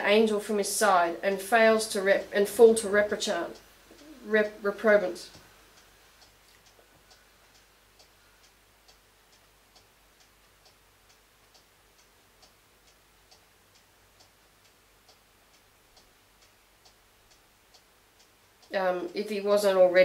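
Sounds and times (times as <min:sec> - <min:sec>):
clock ticking: 0:00.0 - 0:20.0.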